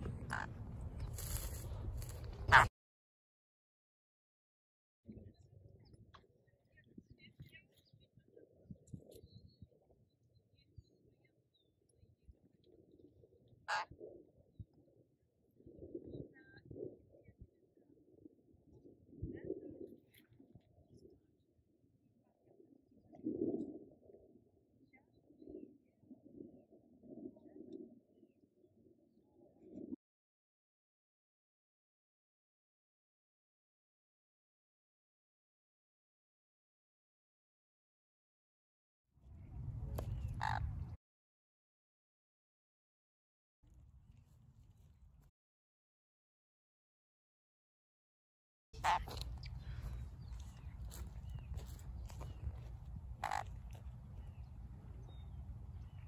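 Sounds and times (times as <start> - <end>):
parrot squawk: 13.7 - 13.9, 40.4 - 40.7, 48.8 - 49.2, 53.2 - 53.5.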